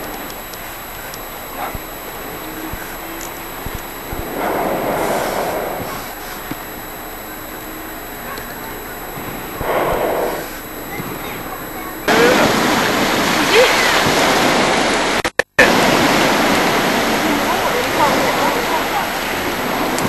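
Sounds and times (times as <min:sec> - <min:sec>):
propane burner roaring: 0:00.0 - 0:20.0
steady outdoor hiss: 0:00.0 - 0:20.0.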